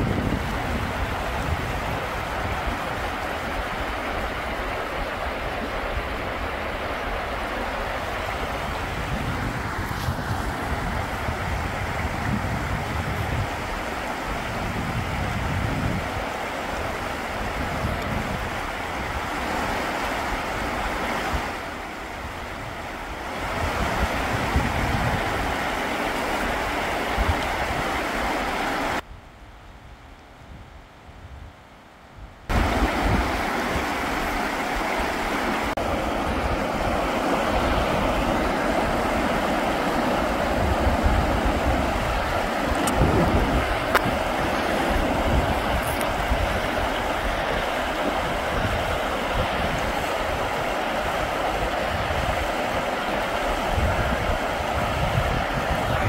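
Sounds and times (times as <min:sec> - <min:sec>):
river rushing over rocks: 0:00.0 - 0:29.0, 0:32.5 - 0:56.0
wind buffeting microphone: 0:00.0 - 0:31.6, 0:32.2 - 0:56.0.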